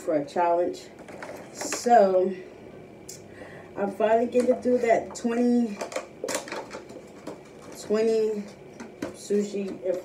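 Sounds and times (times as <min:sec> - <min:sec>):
plastic container clicking and crinkling: 0:05.7 - 0:07.9.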